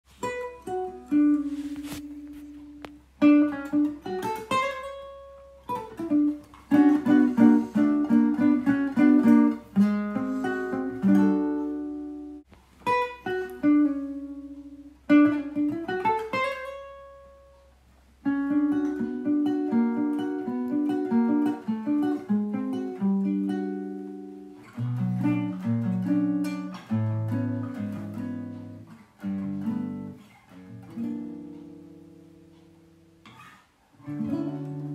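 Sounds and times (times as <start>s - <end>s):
plucked guitar music: 0.1s - 34.9s.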